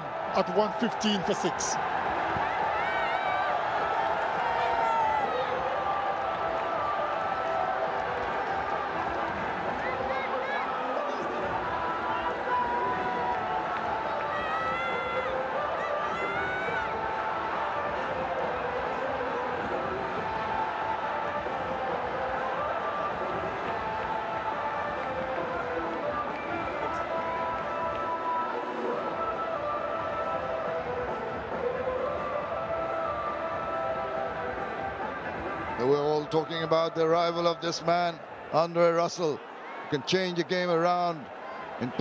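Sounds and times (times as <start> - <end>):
stadium crowd cheering: 0.0 - 42.0.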